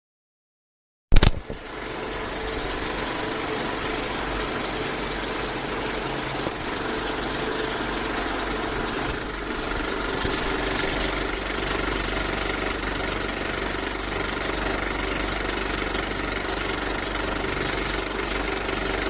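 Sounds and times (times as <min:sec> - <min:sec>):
machine rattling: 0:01.2 - 0:19.0.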